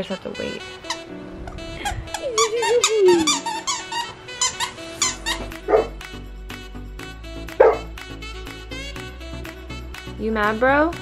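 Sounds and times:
background music: 0.0 - 11.0
squeaky toy squeaking: 0.8 - 5.9.

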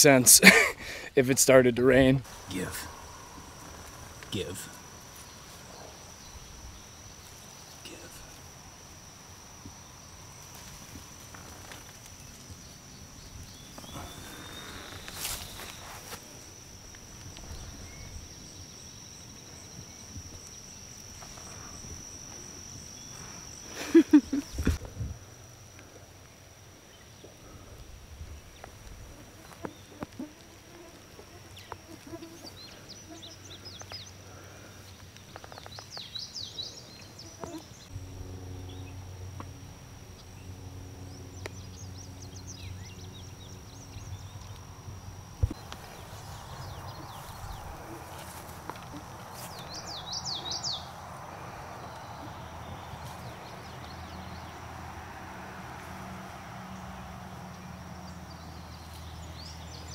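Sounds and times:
high-pitched insect drone: 1.4 - 59.9
low steady hum: 36.8 - 59.9
bird chirps: 48.8 - 50.9.

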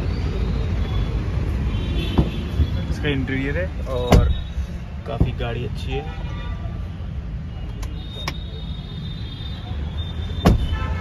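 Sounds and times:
car door opening click: 10.4 - 10.8.

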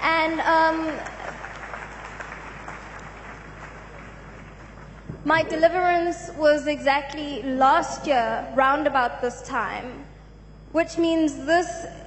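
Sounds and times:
faint congregation applause: 0.8 - 5.2.

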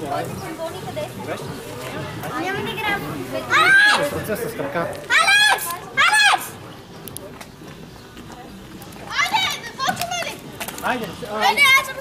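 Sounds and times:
children shouting: 3.4 - 4.2, 5.0 - 6.6, 9.1 - 10.4.

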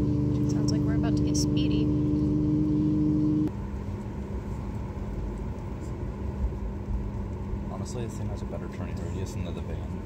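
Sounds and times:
low engine rumble and hum: 0.0 - 10.0.

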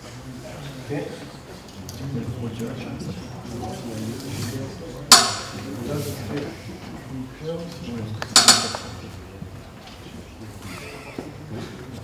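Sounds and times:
faint low talk: 0.0 - 12.0.

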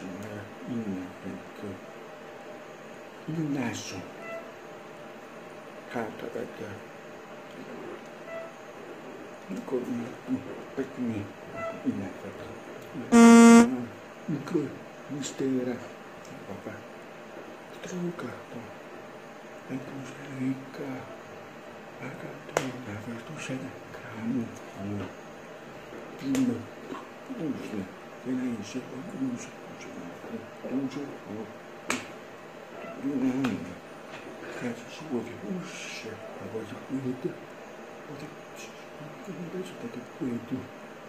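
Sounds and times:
buzzing horn blast: 13.1 - 13.8
hand snap: 31.9 - 32.1.

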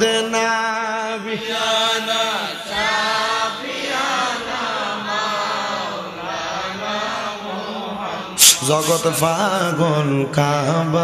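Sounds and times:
man chanting through amplifier: 0.0 - 3.7, 7.2 - 11.0.

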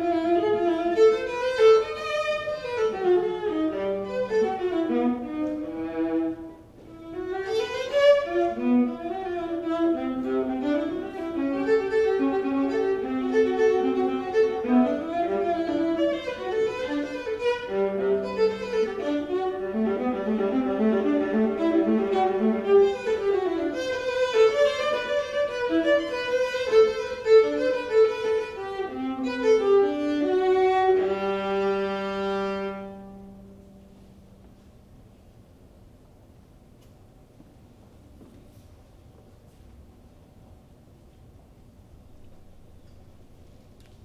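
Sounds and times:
solo violin playing: 0.0 - 34.0.

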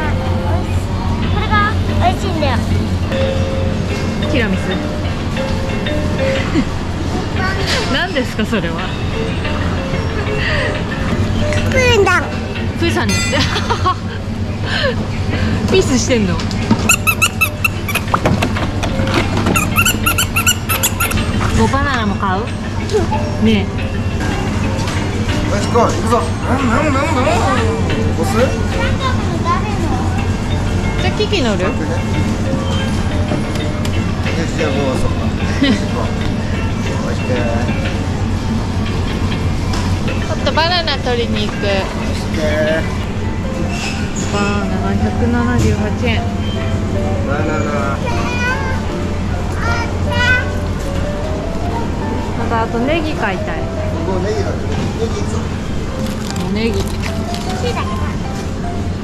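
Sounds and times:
voices talking: 0.0 - 18.2, 18.9 - 58.6
background music: 0.0 - 59.0
shopping cart squeaking: 16.7 - 18.2, 19.0 - 21.9.

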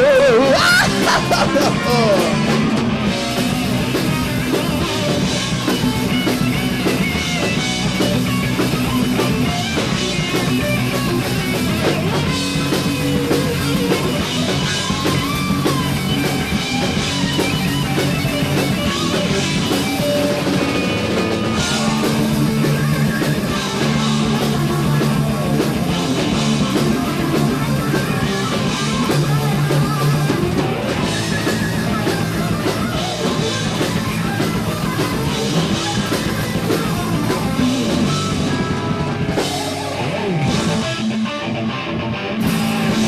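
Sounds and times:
heavy metal band playing: 0.0 - 43.0
lead guitar bending pitch: 0.8 - 43.0.

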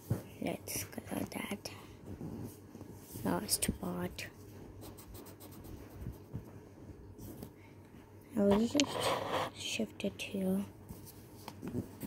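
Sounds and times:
marker scratching on paper: 4.8 - 6.3, 8.5 - 9.6.

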